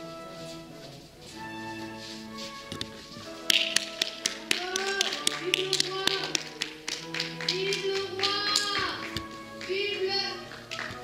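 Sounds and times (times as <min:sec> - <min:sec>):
recorded music: 0:00.0 - 0:11.0
sharp hand claps: 0:03.4 - 0:09.8, 0:10.5 - 0:11.0
person's voice: 0:04.6 - 0:06.4.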